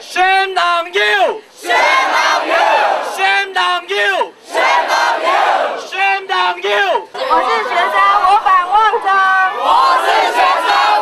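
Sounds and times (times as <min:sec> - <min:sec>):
man shouting slogan: 0:00.0 - 0:01.5, 0:03.0 - 0:04.4, 0:05.8 - 0:08.1
crowd shouting back: 0:04.1 - 0:11.0.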